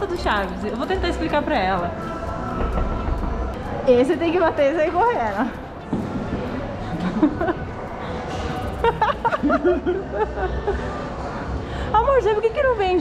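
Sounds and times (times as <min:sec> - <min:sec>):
background chatter: 0:00.0 - 0:13.0
background music: 0:00.0 - 0:13.0.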